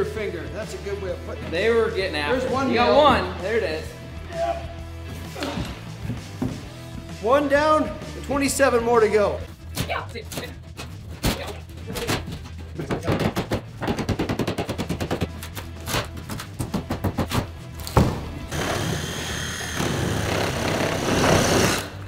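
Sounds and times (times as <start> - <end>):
power tool whining: 18.5 - 22.0.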